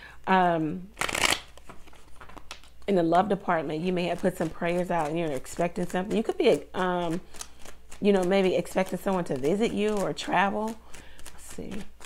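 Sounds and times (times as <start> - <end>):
cards being shuffled: 0.9 - 2.9, 4.0 - 12.0.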